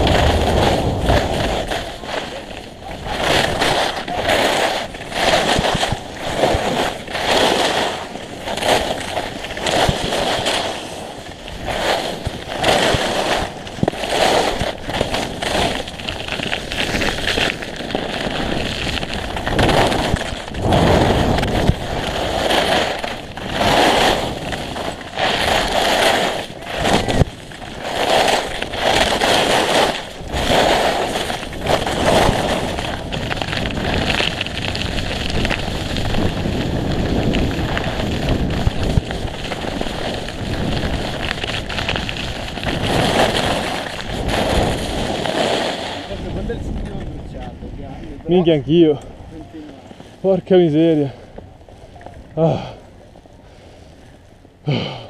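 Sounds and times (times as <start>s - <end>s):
wind on microphone: 0.0s - 49.6s
skis scraping on snow: 0.0s - 54.9s.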